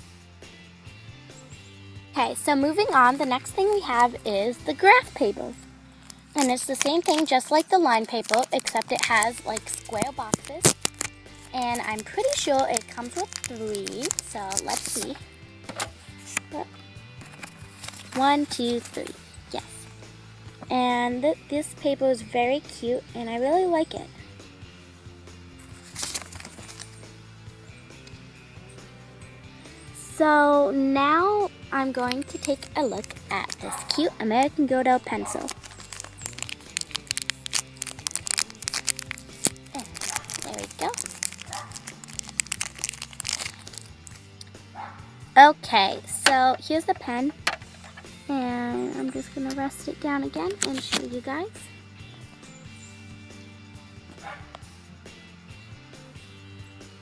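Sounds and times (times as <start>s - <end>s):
background music with steady beat: 0.0s - 57.0s
paper sheets rustling: 17.2s - 19.1s, 25.8s - 27.0s.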